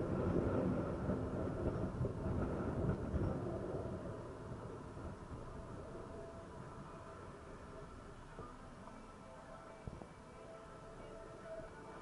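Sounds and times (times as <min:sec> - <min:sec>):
city traffic: 0:00.0 - 0:12.0
wind rumbling on microphone: 0:00.0 - 0:12.0.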